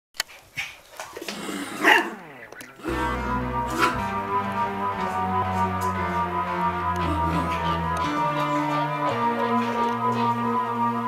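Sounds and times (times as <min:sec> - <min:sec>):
dog yapping: 0:01.8 - 0:02.2.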